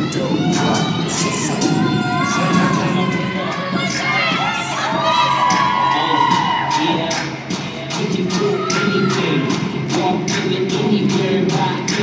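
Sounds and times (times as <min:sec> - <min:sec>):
crowd cheering and screaming: 0:00.0 - 0:07.5, 0:08.3 - 0:09.6
dance music over sound system: 0:00.0 - 0:12.0.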